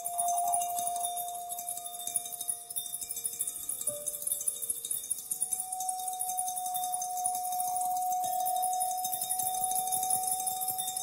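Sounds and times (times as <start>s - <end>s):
wine glasses tinkling: 0.0s - 11.0s.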